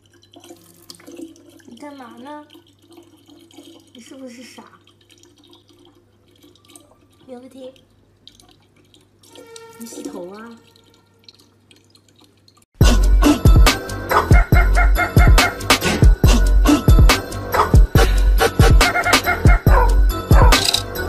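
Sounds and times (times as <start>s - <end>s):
water trickling into plastic bottle: 0.0s - 12.7s
hip-hop music with heavy beat: 12.8s - 21.0s.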